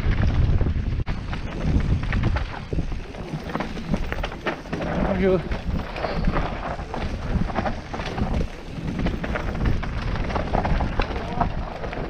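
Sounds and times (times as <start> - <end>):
bike rattling: 0.0 - 12.0
bike tyres skidding on dirt: 0.0 - 12.0
wind rumble on microphone: 0.0 - 12.0.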